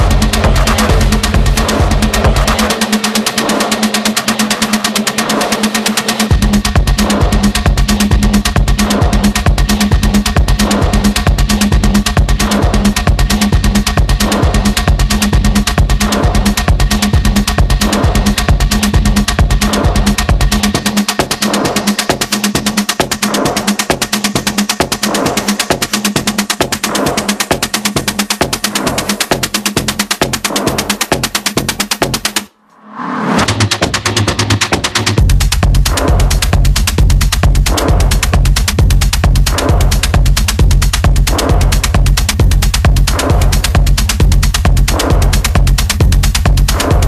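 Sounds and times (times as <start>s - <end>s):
rapid sharp percussion hits: 0.0s - 32.5s, 33.2s - 47.0s
hard techno music: 0.0s - 47.0s.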